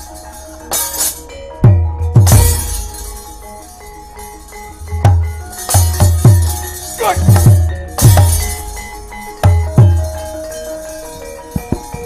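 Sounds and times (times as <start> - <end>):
metal plates clashing: 0.0 - 1.4, 2.2 - 3.6, 4.2 - 12.0
bronze metallophone tones ringing: 0.0 - 12.0.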